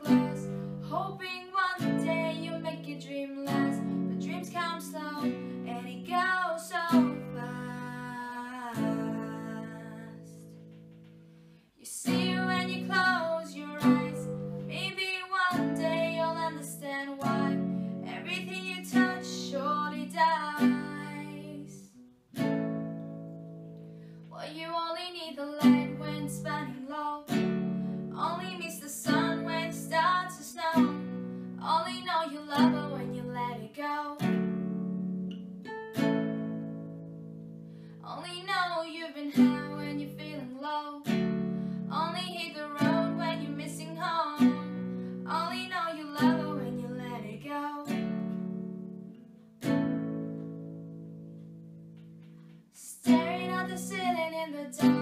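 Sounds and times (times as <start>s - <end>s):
girl singing: 0.0s - 10.7s, 11.8s - 22.5s, 24.3s - 34.4s, 38.0s - 48.2s, 52.7s - 55.0s
classical guitar strummed: 0.0s - 24.4s, 25.4s - 55.0s.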